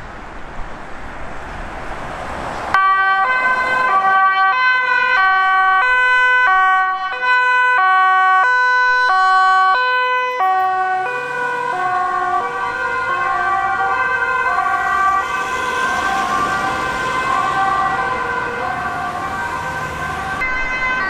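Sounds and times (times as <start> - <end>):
police car two-tone siren: 2.7 - 21.0.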